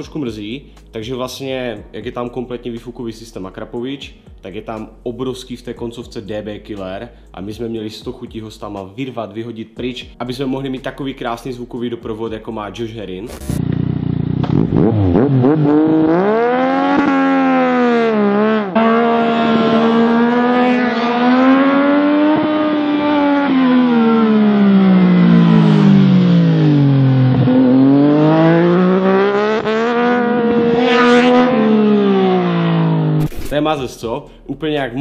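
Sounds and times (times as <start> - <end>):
motorcycle engine revving: 13.3 - 33.5.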